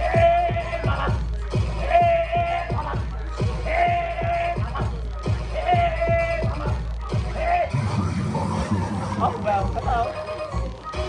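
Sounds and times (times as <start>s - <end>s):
people calling out: 0.0s - 9.4s
dance music: 0.0s - 11.0s.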